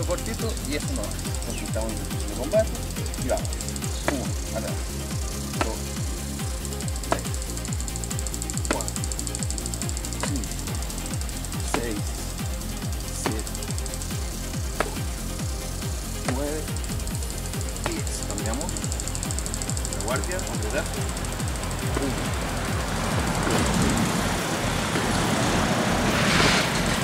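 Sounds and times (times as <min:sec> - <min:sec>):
music with fast steady beat: 0:00.0 - 0:25.2.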